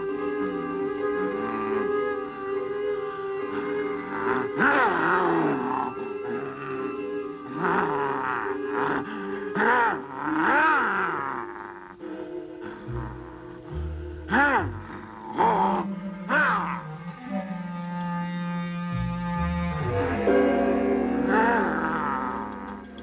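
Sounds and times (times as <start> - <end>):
sustained low note: 12.0 - 23.0.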